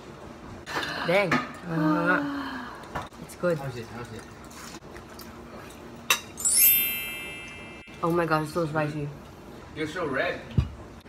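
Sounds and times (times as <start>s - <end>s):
woman talking: 7.9s - 9.2s.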